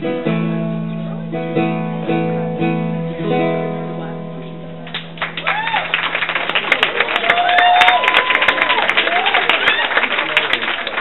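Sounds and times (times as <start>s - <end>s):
audience applauding: 4.9s - 11.0s
whoops and cheers: 5.4s - 6.1s, 6.8s - 10.5s.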